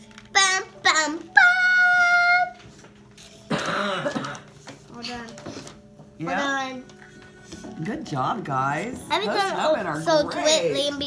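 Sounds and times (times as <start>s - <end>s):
person clearing throat: 3.5s - 4.5s.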